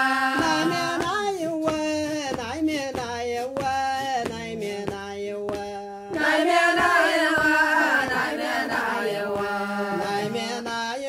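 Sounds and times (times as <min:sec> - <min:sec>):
group of voices chanting: 0:00.0 - 0:01.1, 0:06.2 - 0:10.6.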